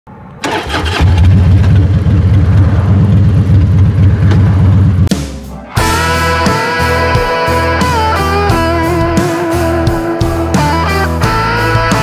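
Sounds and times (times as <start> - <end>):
motorcycle engine starting and rumbling: 0.4 - 5.1
electric guitar music: 5.1 - 12.0.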